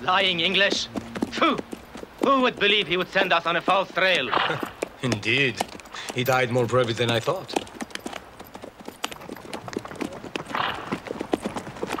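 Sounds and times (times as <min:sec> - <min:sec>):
horse hooves clip-clopping: 0:00.0 - 0:12.0.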